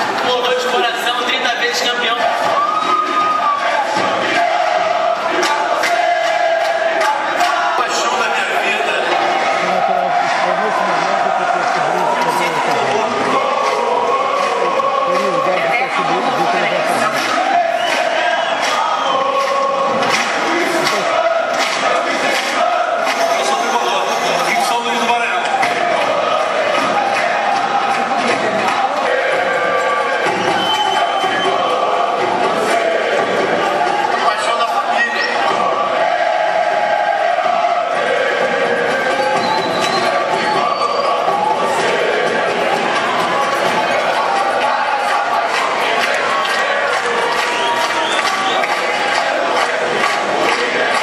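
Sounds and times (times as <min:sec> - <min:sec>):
football crowd noise: 0:00.0 - 0:51.0.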